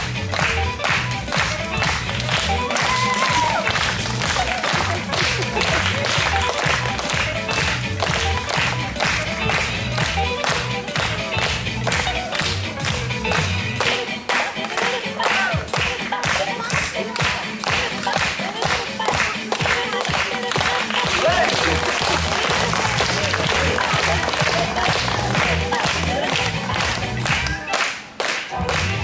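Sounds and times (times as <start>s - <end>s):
audience clapping along: 0.0s - 29.0s
backing music with steady beat: 0.0s - 29.0s.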